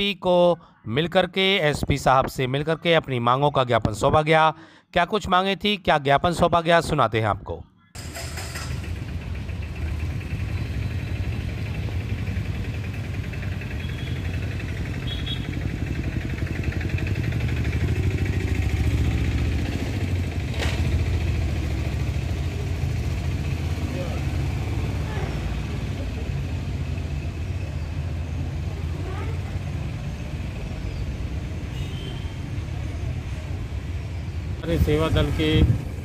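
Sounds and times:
low engine rumble: 8.0 - 31.8.

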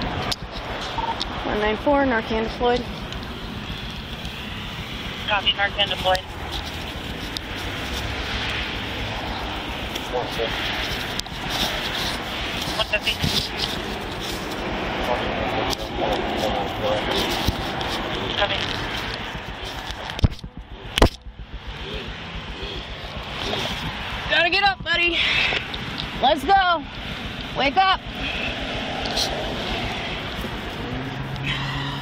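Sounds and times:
clothing rubbing on microphone: 2.6 - 24.4, 29.0 - 31.6
sharp clicks: 17.3 - 24.1.

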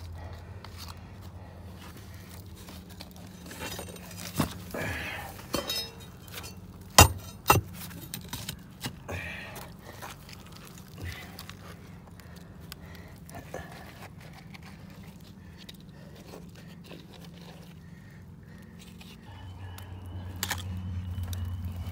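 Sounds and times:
steady low hum: 0.0 - 21.9
debris scraping and clinking: 2.9 - 8.6.

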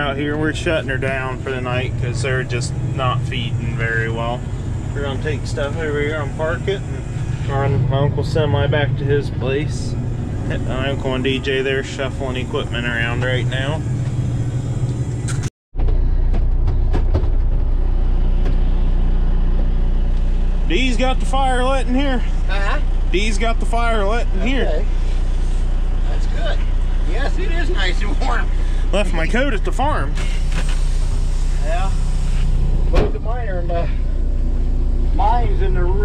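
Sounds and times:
low engine hum in cab: 0.0 - 36.0
vehicle engine rumble: 0.0 - 36.0.

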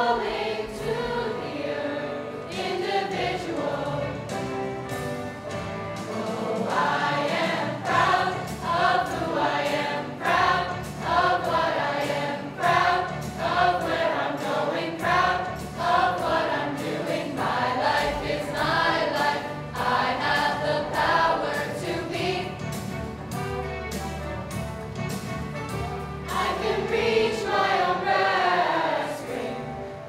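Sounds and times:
choir singing: 0.0 - 4.6, 5.4 - 22.9, 26.2 - 30.0.

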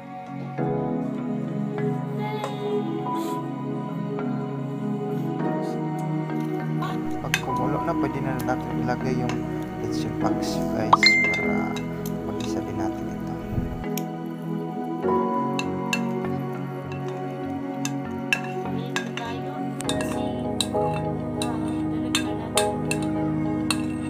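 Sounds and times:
background music sustained tones: 0.0 - 24.0.

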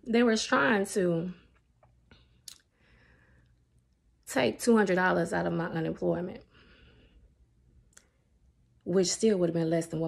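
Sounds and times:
woman's voice: 0.0 - 1.5, 4.3 - 6.4, 8.8 - 10.0.

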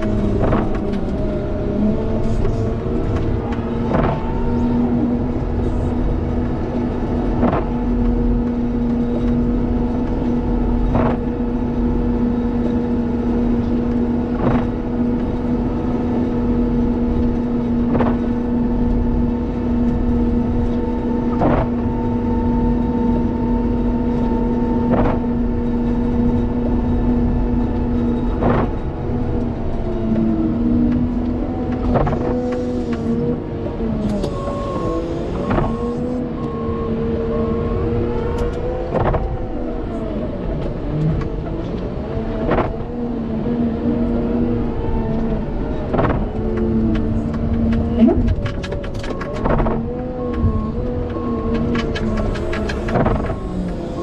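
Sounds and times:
wheel loader engine under load: 0.0 - 54.0.

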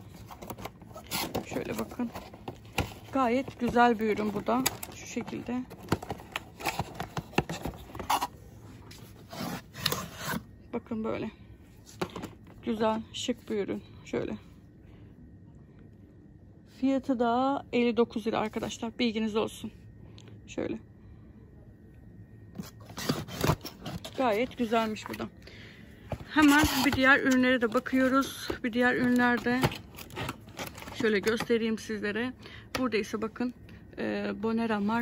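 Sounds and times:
cardboard box scraping: 9.2 - 10.4, 22.6 - 25.2.

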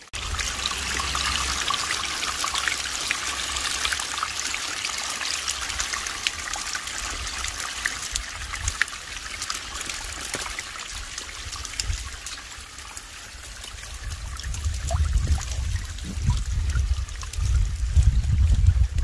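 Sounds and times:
water trickling and splashing: 0.0 - 19.0.

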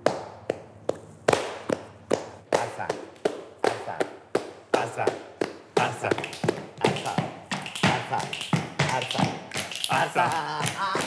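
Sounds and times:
muffled hand clapping: 0.0 - 11.0.

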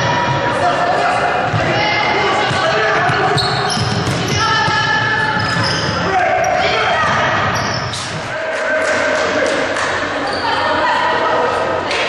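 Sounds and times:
people calling out in a hall: 0.0 - 12.0.

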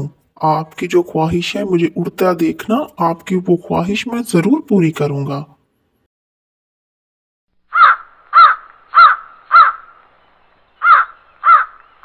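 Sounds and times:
crow cawing: 7.7 - 10.0, 10.8 - 11.9.

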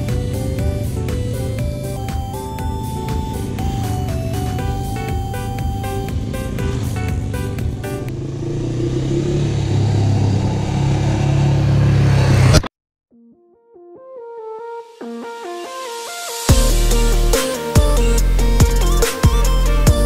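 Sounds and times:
background music with a beat: 0.0 - 8.1, 14.2 - 20.0.

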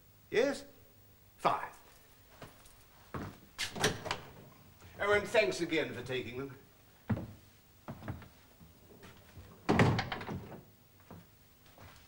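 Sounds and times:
door shutting with thud: 3.6 - 4.4, 9.6 - 10.6.

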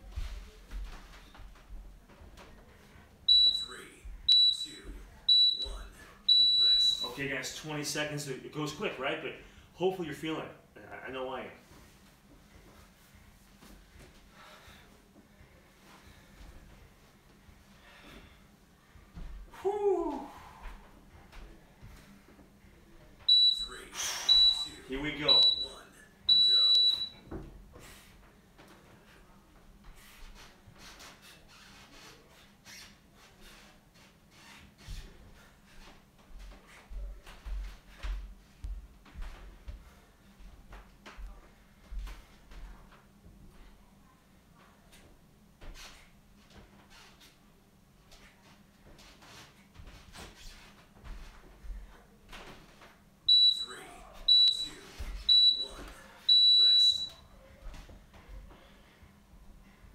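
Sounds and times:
long timer beep: 3.3 - 7.1, 23.3 - 27.2, 53.3 - 57.2
short high timer beeps: 5.3 - 7.1, 23.3 - 27.2, 53.3 - 57.2
faint breathing: 9.4 - 9.8, 14.1 - 16.8, 17.6 - 19.2.

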